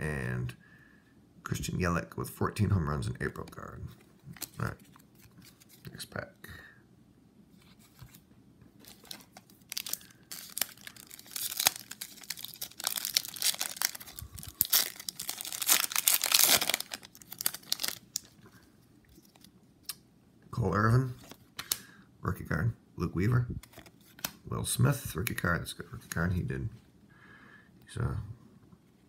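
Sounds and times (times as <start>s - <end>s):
voice: 0.0s - 0.6s, 1.5s - 4.8s, 5.8s - 6.8s, 20.6s - 21.2s, 22.2s - 23.6s, 24.5s - 26.8s, 27.9s - 28.4s
foil wrapper crinkling and tearing: 8.8s - 18.4s.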